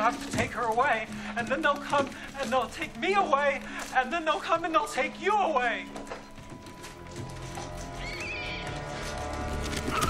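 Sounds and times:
film score music: 0.0s - 10.0s
rat squealing: 8.0s - 8.7s.

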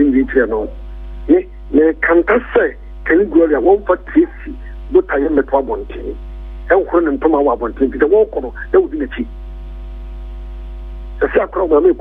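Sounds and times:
speech over a telephone line: 0.0s - 9.4s, 11.2s - 12.0s
steady electrical hum: 0.0s - 12.0s.

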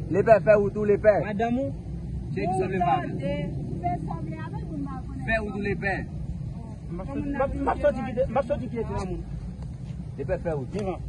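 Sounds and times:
steady low rumble: 0.0s - 11.0s
people talking: 0.1s - 9.3s.

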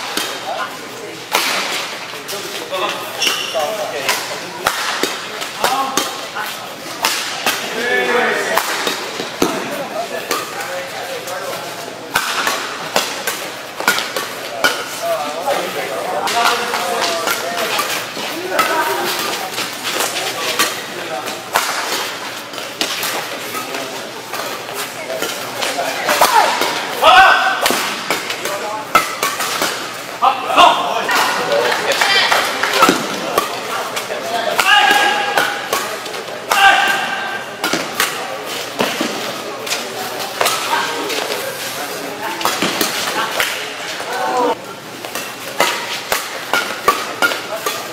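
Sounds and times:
rackets striking shuttlecock: 12.1s - 15.0s, 24.4s - 30.0s, 31.1s - 41.4s, 45.0s - 47.9s.

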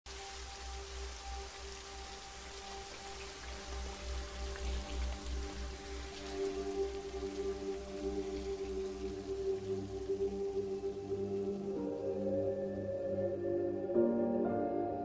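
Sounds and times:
heavy rain on a street: 0.1s - 13.3s
film score with long held notes: 0.1s - 15.0s.

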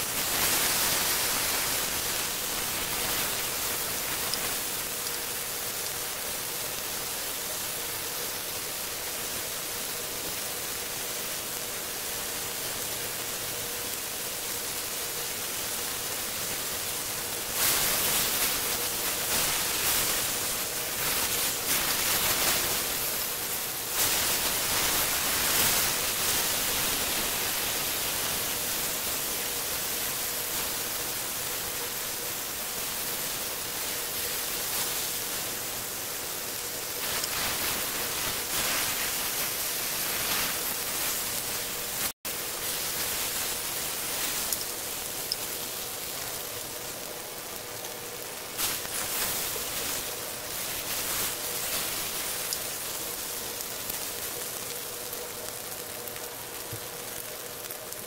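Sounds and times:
steaks sizzling in oil: 0.0s - 58.0s.

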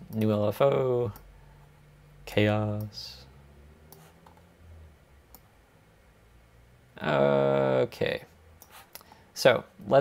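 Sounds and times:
low room hum: 0.0s - 10.0s
computer mouse clicks: 3.9s - 4.4s.

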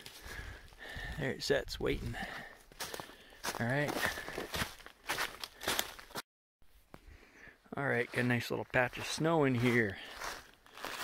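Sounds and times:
footsteps on snow and leaves: 2.2s - 6.2s, 8.0s - 11.0s.

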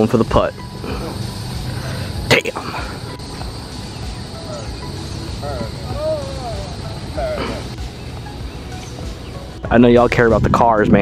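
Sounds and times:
faint distant voices: 0.8s - 9.1s
wind rumble on microphone: 8.1s - 11.0s.

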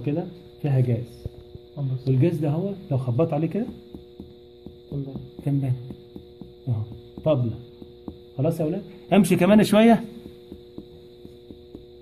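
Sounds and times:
electrical hum: 0.0s - 12.0s
finger percussion taps on ribs: 3.2s - 12.0s.

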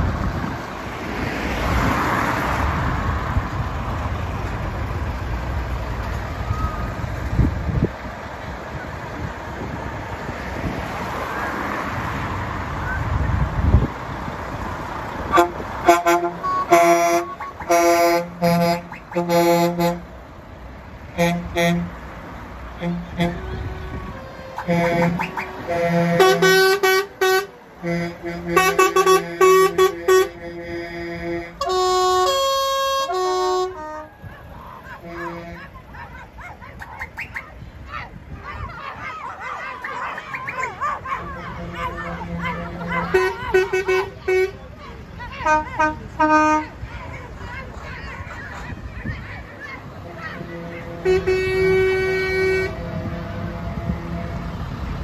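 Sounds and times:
voices: 10.9s - 54.6s
musical air horn playing tune: 15.3s - 20.1s, 21.2s - 22.0s, 22.8s - 34.2s, 35.0s - 35.8s, 41.2s - 44.6s, 45.4s - 46.7s, 50.0s - 54.7s.

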